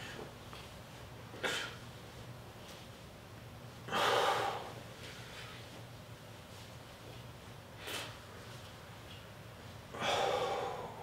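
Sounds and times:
faint room noise: 0:00.0 - 0:11.0.

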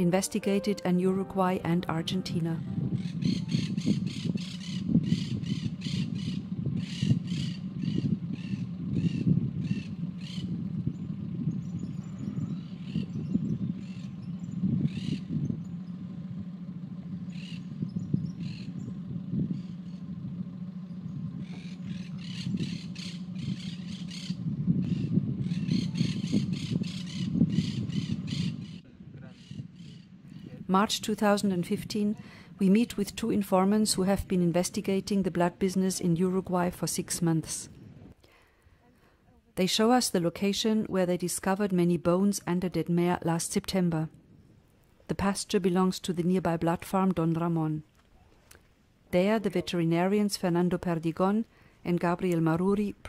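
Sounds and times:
steady low rumble: 0:00.0 - 0:38.3
bird harsh calls: 0:02.9 - 0:30.5.

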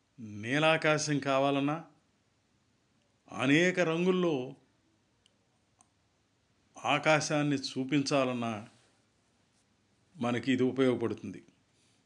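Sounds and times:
man speaking: 0:00.2 - 0:02.0, 0:03.3 - 0:04.6, 0:06.8 - 0:08.8, 0:10.2 - 0:11.6.

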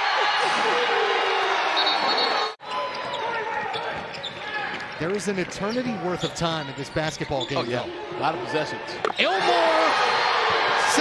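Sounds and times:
arena crowd noise: 0:00.0 - 0:11.0
sounds of play on court: 0:00.0 - 0:11.0.

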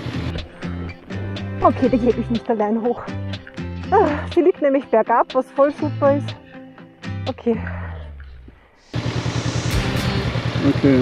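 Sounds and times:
motorcycle engine running: 0:00.0 - 0:02.4, 0:08.9 - 0:11.0
background music: 0:00.0 - 0:11.0.

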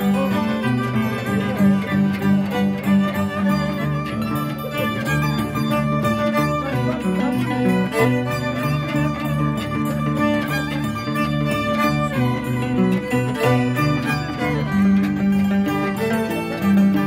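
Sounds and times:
bowed violin melody: 0:00.0 - 0:17.0
harp plucked bass notes: 0:00.0 - 0:17.0.

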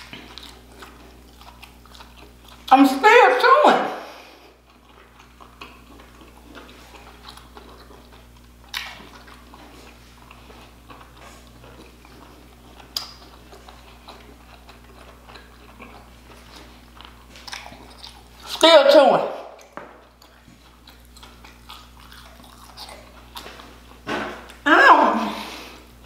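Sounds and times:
chewing with mouth clicks and smacks: 0:00.0 - 0:03.0, 0:04.4 - 0:18.6, 0:19.5 - 0:24.6.

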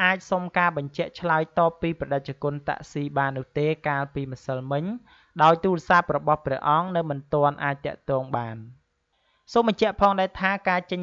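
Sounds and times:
narrator talking: 0:00.0 - 0:08.8, 0:09.5 - 0:11.0.

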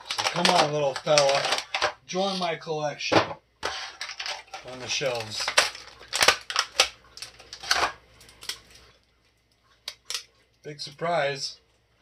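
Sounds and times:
plastic packaging crinkling: 0:00.0 - 0:02.5, 0:03.6 - 0:10.3.

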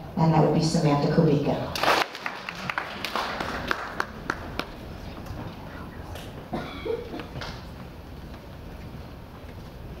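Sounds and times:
audience applause: 0:01.8 - 0:05.0.

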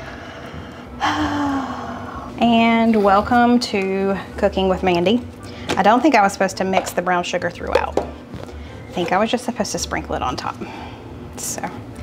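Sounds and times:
woman sighing: 0:01.0 - 0:02.3.

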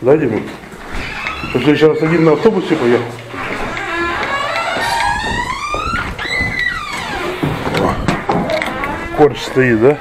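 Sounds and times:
door hinges creaking: 0:00.8 - 0:10.0.

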